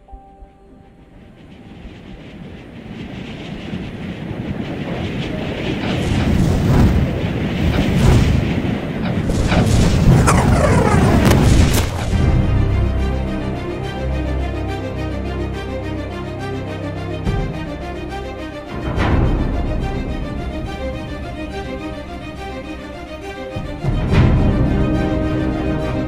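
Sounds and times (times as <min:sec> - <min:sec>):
music: 0:00.0 - 0:02.1, 0:12.1 - 0:26.0
rumbling whoosh: 0:06.0 - 0:13.0
sharp hits and falling sweeps: 0:07.7 - 0:12.4.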